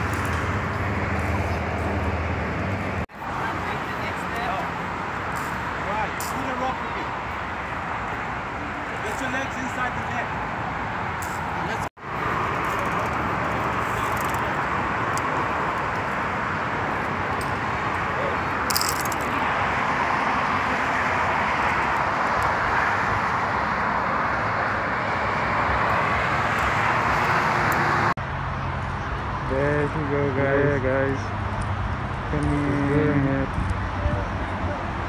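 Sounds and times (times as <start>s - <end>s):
distant road traffic roar: 0.0s - 35.0s.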